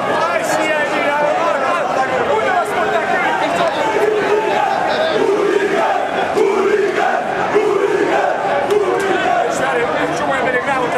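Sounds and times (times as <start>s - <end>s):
crowd of men chanting: 0.2s - 10.2s.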